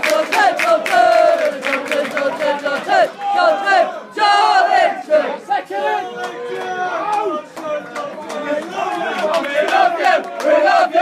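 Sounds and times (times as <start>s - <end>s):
football crowd shouting and chanting: 0.0s - 11.0s.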